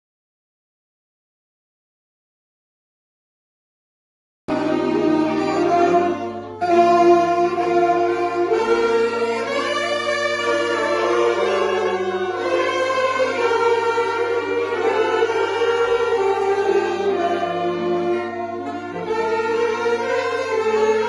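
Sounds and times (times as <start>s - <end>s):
saxophone ensemble playing: 4.5s - 21.0s.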